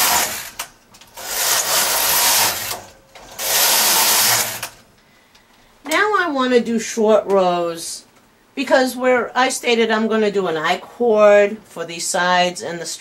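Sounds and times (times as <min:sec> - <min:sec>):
knitting machine carriage sliding: 0:00.0 - 0:04.8.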